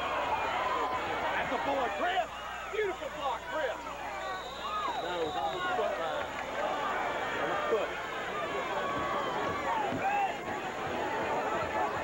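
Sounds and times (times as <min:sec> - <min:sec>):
crowd chattering and shouting: 0:00.0 - 0:12.0.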